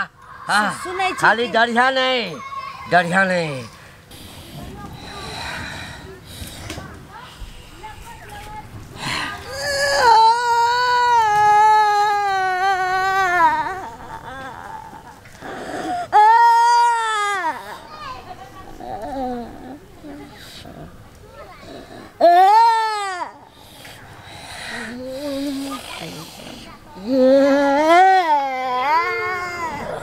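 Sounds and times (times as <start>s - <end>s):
person hissing and snorting: 23.5s - 26.8s.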